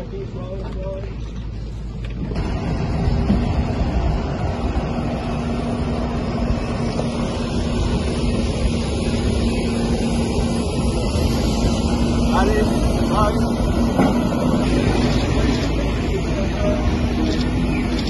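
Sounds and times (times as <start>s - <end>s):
excavator engine drone: 0.0s - 18.0s.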